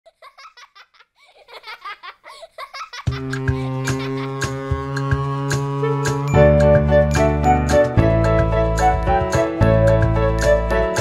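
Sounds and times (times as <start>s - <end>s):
children laughing: 0.1s - 4.6s.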